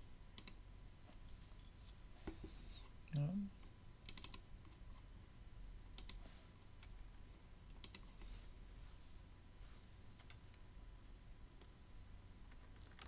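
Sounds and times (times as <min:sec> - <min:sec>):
keyboard and mouse clicks: 0:00.4 - 0:00.6, 0:04.0 - 0:04.8, 0:05.9 - 0:06.2, 0:07.7 - 0:08.2, 0:12.5 - 0:13.0.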